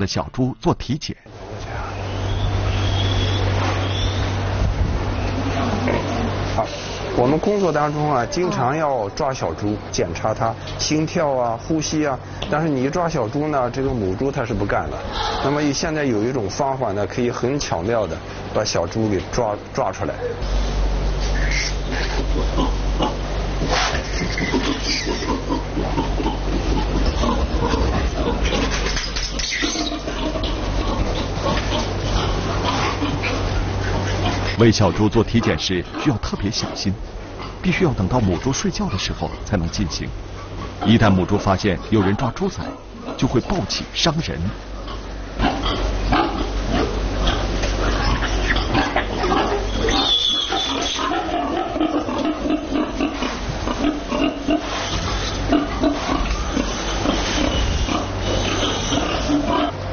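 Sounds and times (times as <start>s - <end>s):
steady low hum: 0.0s - 59.9s
pig squealing: 1.8s - 4.4s, 14.9s - 16.0s, 21.2s - 37.6s, 44.7s - 59.9s
pigs grunting: 5.4s - 59.9s.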